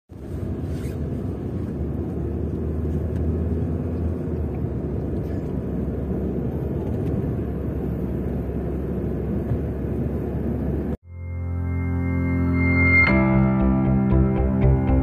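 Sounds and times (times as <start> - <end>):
vehicle engine and road noise: 0.1 - 15.0.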